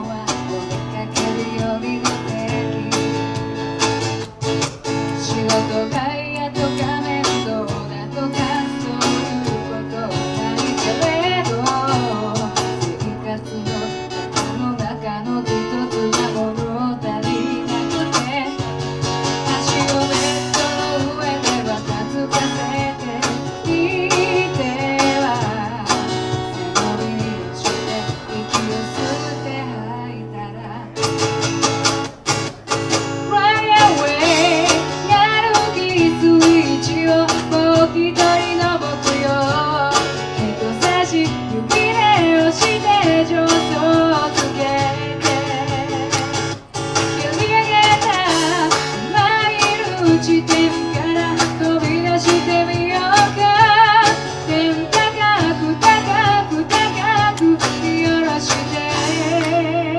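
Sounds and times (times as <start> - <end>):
woman singing with vibrato: 0.0 - 3.6, 4.9 - 31.1, 33.1 - 59.9
cajon: 0.0 - 59.9
electric guitar: 0.0 - 59.9
strummed acoustic guitar: 0.0 - 59.9.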